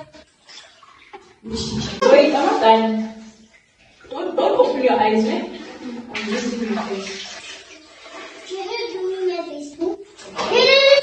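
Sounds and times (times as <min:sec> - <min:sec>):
sponge scrubbing: 0:00.0 - 0:09.3
bath water splashing: 0:00.0 - 0:11.0
child's voice: 0:08.5 - 0:11.0.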